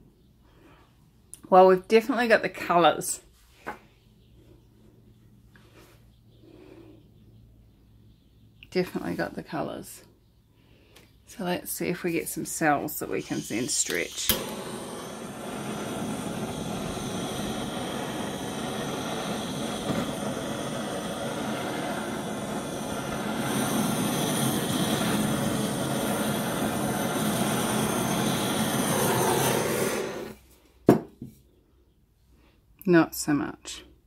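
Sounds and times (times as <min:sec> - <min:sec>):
hot-air blower running: 0:13.0 - 0:30.4.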